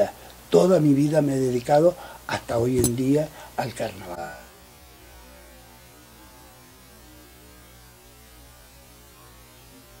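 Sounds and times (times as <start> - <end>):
electrical mains hum: 0.0 - 10.0
faint hiss: 0.0 - 10.0.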